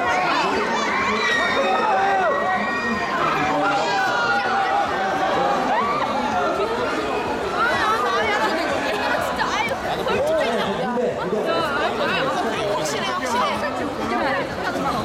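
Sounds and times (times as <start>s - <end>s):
crowd chatter: 0.0s - 15.0s
man speaking into a microphone: 10.2s - 11.6s.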